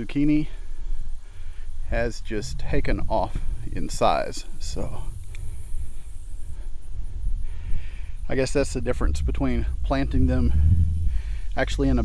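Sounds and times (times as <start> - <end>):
wind buffeting microphone: 1.7 - 12.0.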